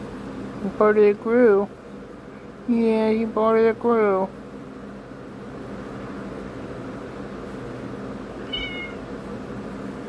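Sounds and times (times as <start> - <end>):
cat meowing: 8.4 - 9.0.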